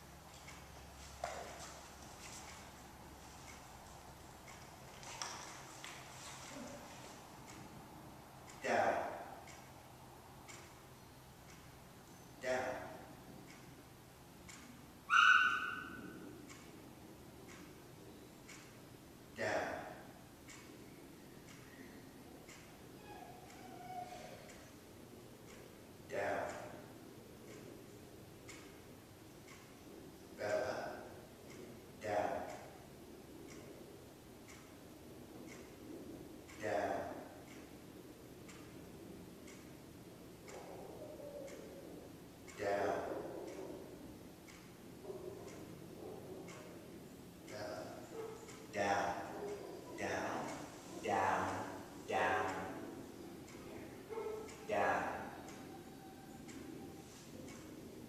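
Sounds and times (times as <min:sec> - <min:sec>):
wall clock ticking: 0:00.0 - 0:58.0.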